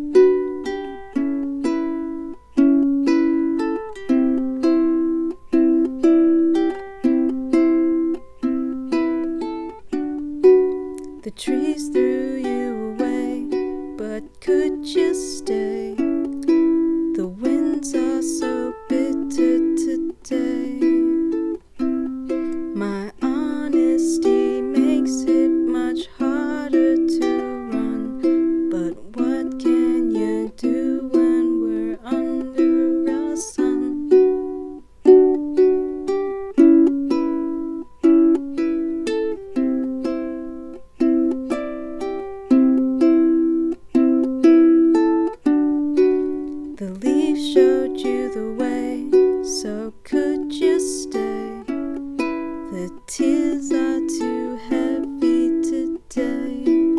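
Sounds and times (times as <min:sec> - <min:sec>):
ukulele plucked chords: 0:00.0 - 0:56.9.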